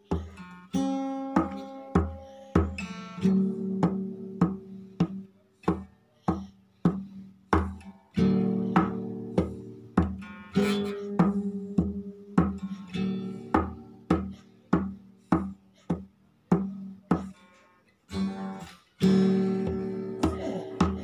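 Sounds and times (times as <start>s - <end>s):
acoustic guitar playing: 0.0s - 21.0s.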